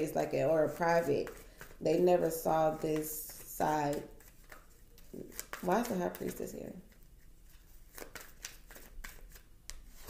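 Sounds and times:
cards being shuffled: 0:00.8 - 0:10.0.

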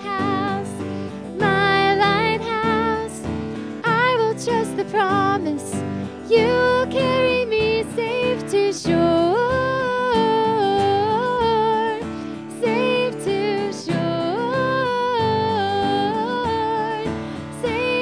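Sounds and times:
strummed acoustic guitar: 0:00.0 - 0:18.0
woman singing into a microphone: 0:00.0 - 0:18.0.

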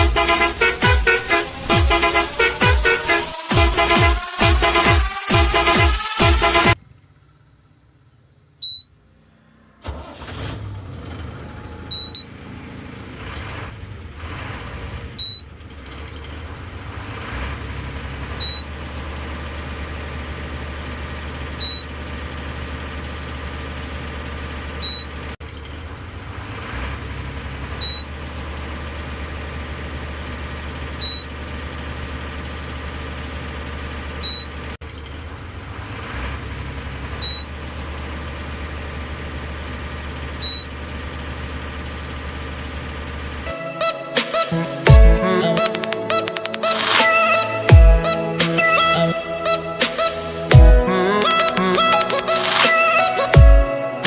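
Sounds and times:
bus engine idling: 0:00.0 - 0:54.0
short high beep: 0:08.6 - 0:08.9, 0:21.6 - 0:21.9, 0:40.4 - 0:40.7.

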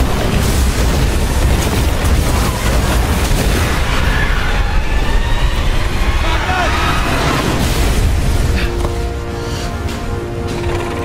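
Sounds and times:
low rumble of flames burning: 0:00.0 - 0:10.6.

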